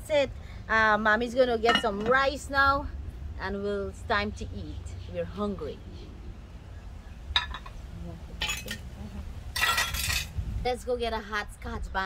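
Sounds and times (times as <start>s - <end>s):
metal cookware clinking on grill: 1.7s - 2.2s, 8.4s - 8.9s, 9.6s - 10.3s
rattling scrape: 9.6s - 10.4s.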